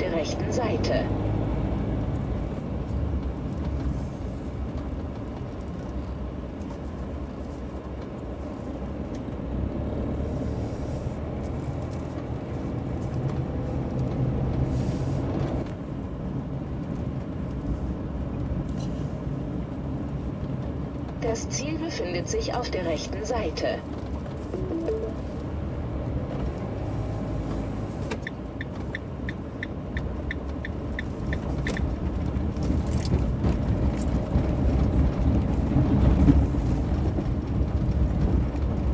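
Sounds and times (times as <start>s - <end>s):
van engine running: 0.0s - 38.9s.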